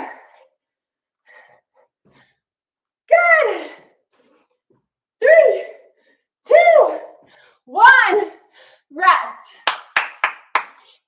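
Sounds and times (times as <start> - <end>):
hand claps: 9.6 - 11.0.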